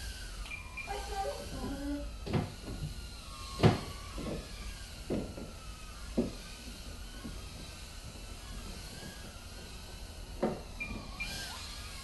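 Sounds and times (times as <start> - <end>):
faint thin whine: 0.0 - 12.0.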